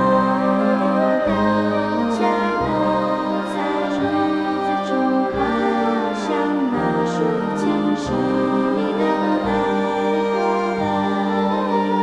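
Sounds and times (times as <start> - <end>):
slow choral orchestral music: 0.0 - 12.0.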